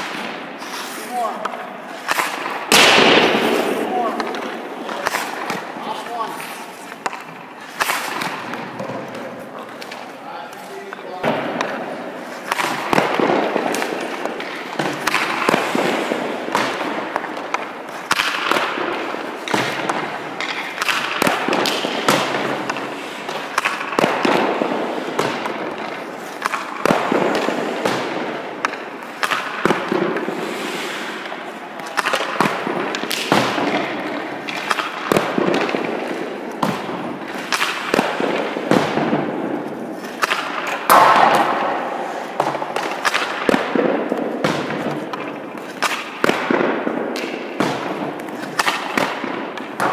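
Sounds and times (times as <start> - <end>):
hockey stick striking puck: 0.0 - 49.9
puck hitting pads net or boards: 0.0 - 49.9.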